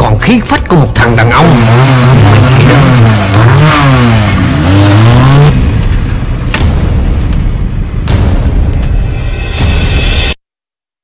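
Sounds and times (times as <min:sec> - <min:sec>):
motorcycle engine revving: 0:01.1 - 0:07.2.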